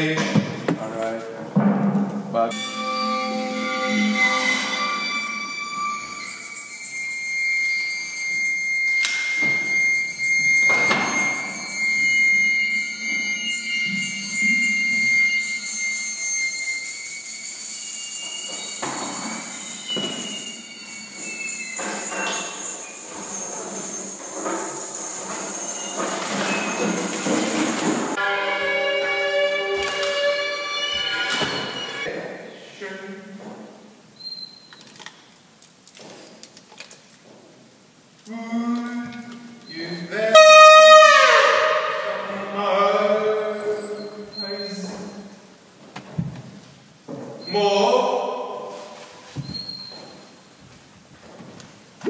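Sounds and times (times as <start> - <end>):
high squealing tone: 2.5 - 32.1, 38.3 - 45.5
continuous high hiss: 5.0 - 28.2, 42.5 - 52.0.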